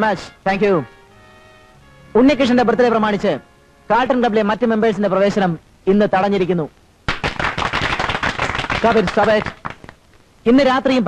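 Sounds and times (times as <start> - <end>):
man's voice: 0.0 - 0.9, 2.1 - 6.7
people clapping: 7.1 - 10.0.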